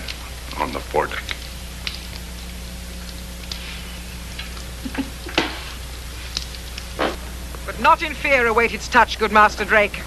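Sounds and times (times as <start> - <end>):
tape hum and hiss: 0.0 - 10.0.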